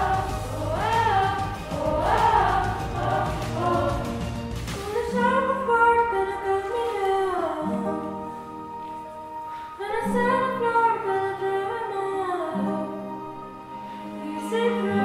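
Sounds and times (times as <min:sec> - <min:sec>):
young female voices singing: 0:00.0 - 0:07.7.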